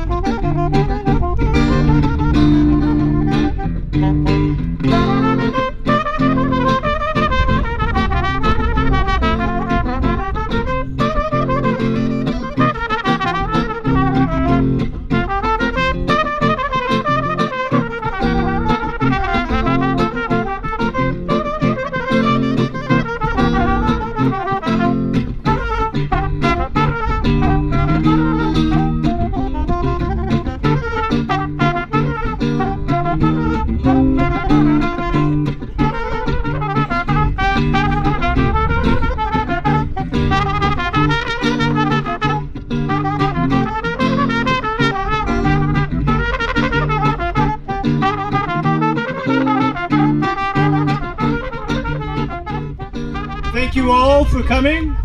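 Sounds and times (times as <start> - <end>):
electric guitar: 0.0 - 55.0
trumpet and saxophone melody: 0.0 - 55.0.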